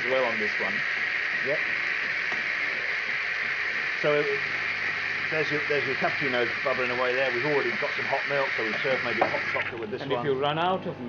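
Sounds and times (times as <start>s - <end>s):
milk frother hissing: 0.0s - 10.0s.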